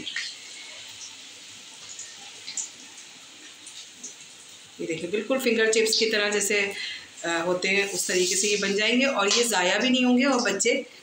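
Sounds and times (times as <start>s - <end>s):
bread deep-frying in oil: 0.0s - 11.0s.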